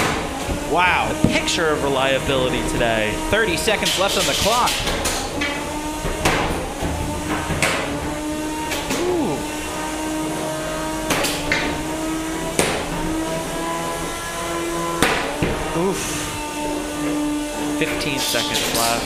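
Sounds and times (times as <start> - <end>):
spinning drum weapons whining: 0.0 - 16.6
sharp metallic hits: 0.6 - 5.3.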